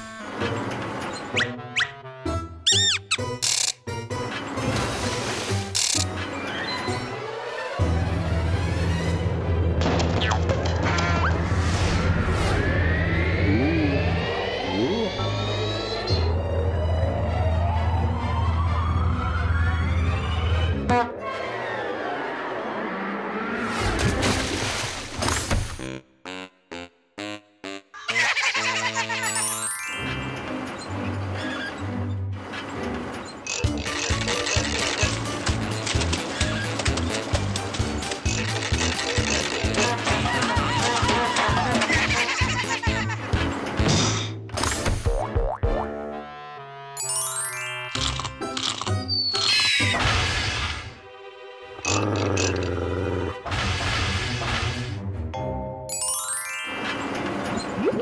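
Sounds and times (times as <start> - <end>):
submersible engine hum and whine: 12.3 - 19.4
cartoon music with bass beat: 25.8 - 29.3, 44.9 - 47.1.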